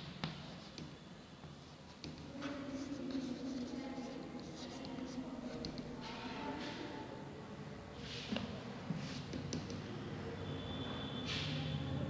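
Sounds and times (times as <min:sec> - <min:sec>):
chalk scratching on blackboard: 0:01.6 - 0:06.8.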